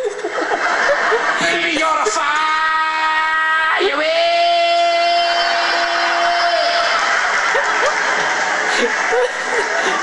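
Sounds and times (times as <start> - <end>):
audience noise: 0.0 - 10.0.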